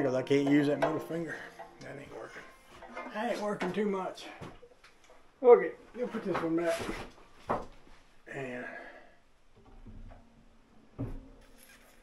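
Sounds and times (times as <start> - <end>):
sharp knocks: 0.3 - 1.8.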